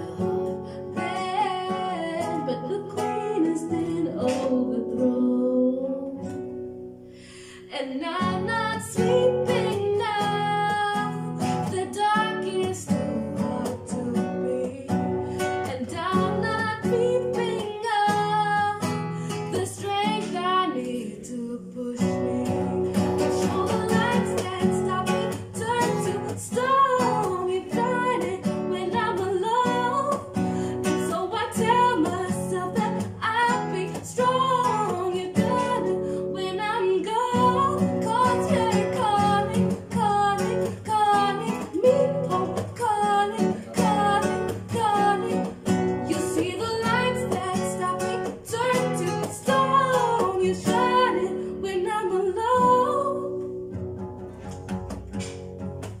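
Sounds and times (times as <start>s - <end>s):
woman singing: 0.0s - 6.6s, 7.4s - 53.6s
acoustic guitar strummed and plucked: 0.0s - 56.0s.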